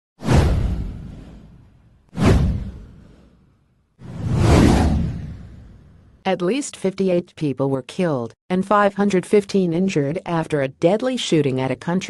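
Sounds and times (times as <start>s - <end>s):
whoosh sound effects: 2.2s - 6.0s.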